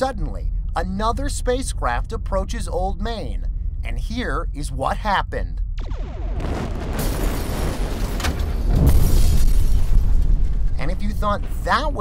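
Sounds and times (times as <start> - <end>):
explosion blast and rumble: 5.6 - 12.0.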